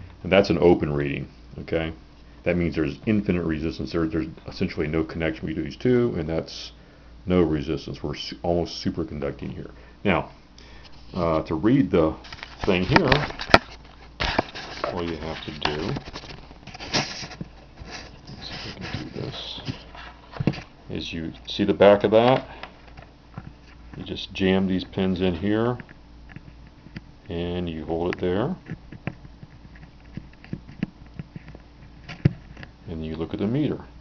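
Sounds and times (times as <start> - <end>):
scraping rustle: 12.2 - 20.7.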